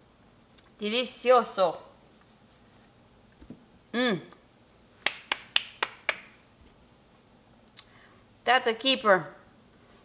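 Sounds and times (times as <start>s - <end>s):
person humming: 3.9s - 4.4s.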